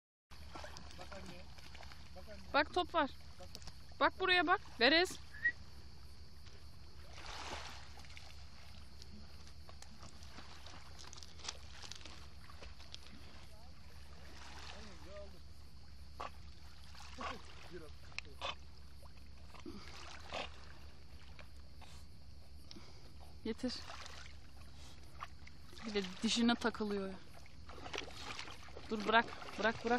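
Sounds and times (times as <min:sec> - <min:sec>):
dog paddling splashes: 0:00.4 - 0:05.5, 0:06.9 - 0:22.1, 0:22.8 - 0:29.9.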